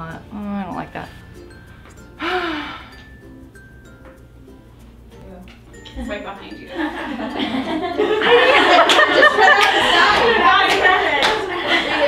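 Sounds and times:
soft background music: 0.0s - 12.0s
woman sighing: 2.2s - 3.0s.

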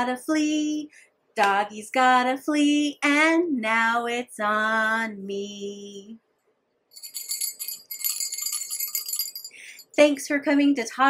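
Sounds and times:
jingle bells shaken: 6.9s - 10.0s.

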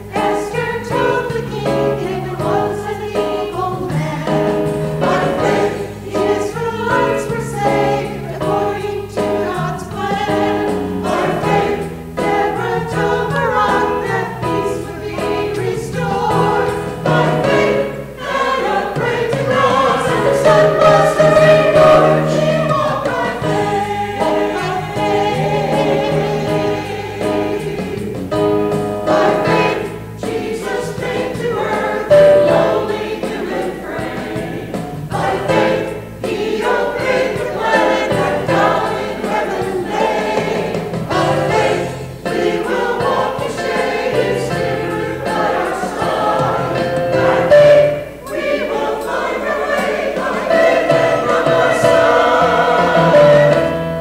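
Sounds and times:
choir singing: 0.0s - 54.0s.

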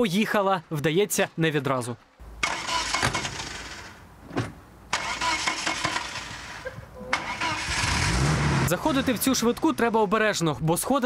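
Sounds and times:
starter motor cranking engine: 2.4s - 4.0s, 4.9s - 9.7s.

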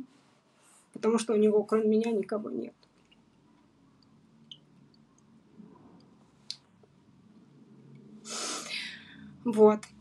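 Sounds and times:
woman's sharp intake of breath: 8.3s - 9.3s.

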